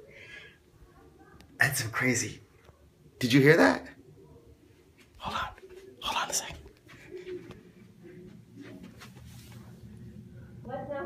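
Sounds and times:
muffled voices through a wall: 0.0s - 11.0s.

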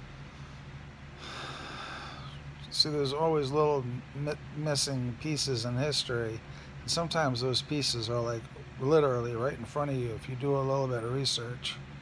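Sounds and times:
steady low hum: 0.0s - 12.0s
man breathing in through nose: 1.2s - 2.4s.

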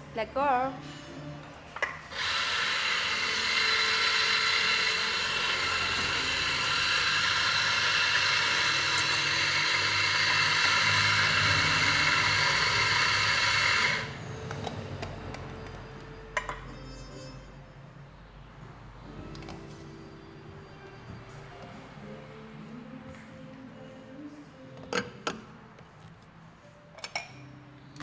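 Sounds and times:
electric coffee grinder grinding: 2.1s - 14.2s.

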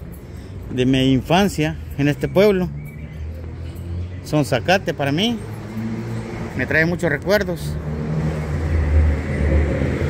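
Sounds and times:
vehicle engine passing: 2.2s - 10.0s.

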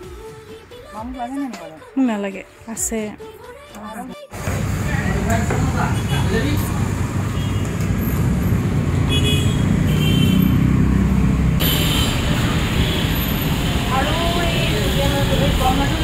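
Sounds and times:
road traffic rumble: 4.3s - 16.0s.

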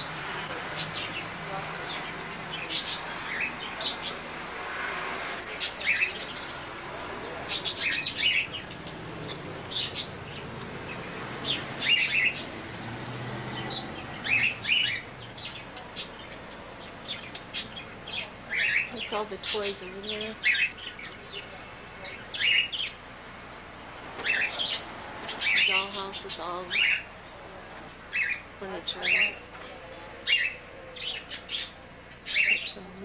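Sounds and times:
parakeets chirping: 0.0s - 33.0s.

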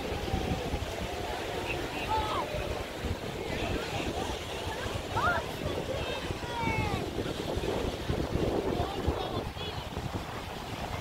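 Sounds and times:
surf on a beach: 0.0s - 11.0s
wind buffeting microphone: 0.0s - 11.0s.

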